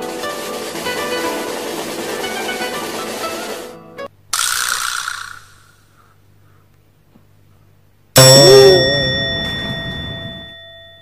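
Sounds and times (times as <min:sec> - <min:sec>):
plucked-string music: 0:00.0 - 0:04.1
wobbling comic sound effect: 0:08.2 - 0:09.4
ringing chime: 0:08.2 - 0:11.0.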